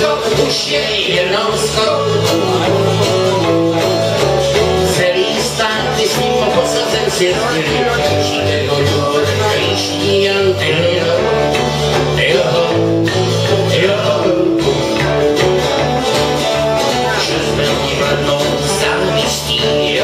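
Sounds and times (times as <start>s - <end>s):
acoustic guitars: 0.0s - 20.0s
electric bass guitar line: 0.0s - 20.0s.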